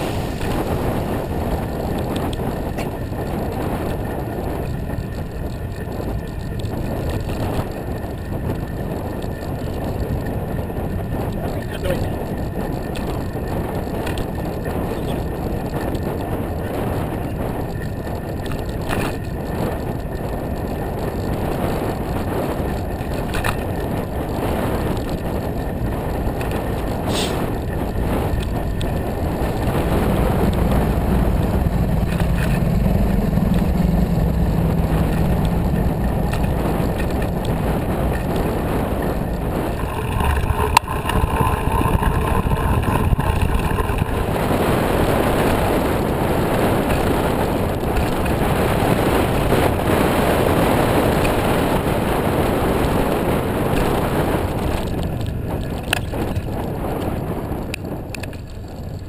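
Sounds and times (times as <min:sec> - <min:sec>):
bicycle rolling on pavement: 0:00.0 - 0:59.0
bike clicks and rattles: 0:00.0 - 0:59.0
wind buffeting microphone: 0:00.0 - 0:59.0
low steady hum: 0:25.6 - 0:50.0.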